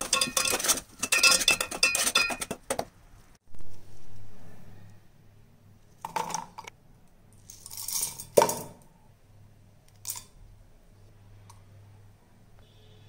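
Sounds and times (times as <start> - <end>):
spices clinking into metal jar: 0.0 - 2.6.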